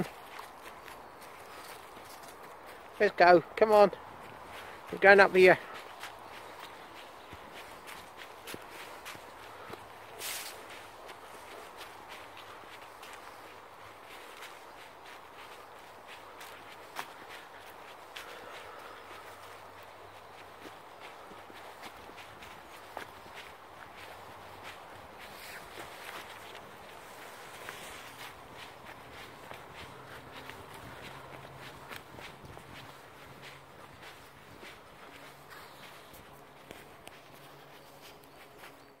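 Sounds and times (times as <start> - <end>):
footsteps on dry leaves: 0.0 - 39.0.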